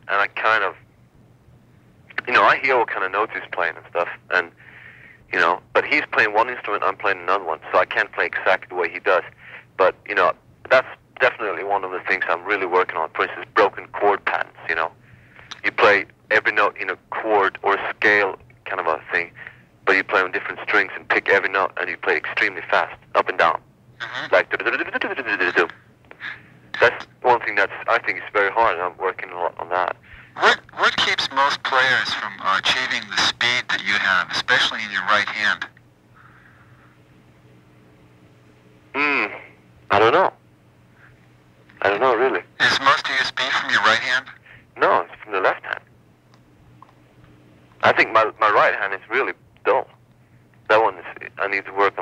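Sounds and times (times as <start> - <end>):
steady low hum: 0.0 - 52.0
person talking over telephone: 0.1 - 0.8, 2.1 - 4.6, 5.3 - 35.8, 38.9 - 40.4, 41.8 - 45.9, 47.8 - 50.0, 50.7 - 52.0.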